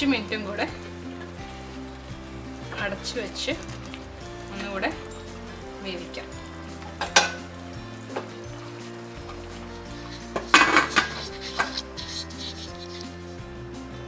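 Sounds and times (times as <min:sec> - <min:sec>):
background music: 0:00.0 - 0:14.0
spatula scraping pressure cooker: 0:09.2 - 0:13.4.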